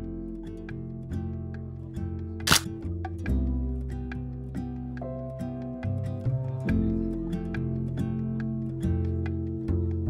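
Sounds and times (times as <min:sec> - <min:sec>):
acoustic guitar music: 0:00.0 - 0:10.0
camera shutter clack: 0:02.5 - 0:02.7.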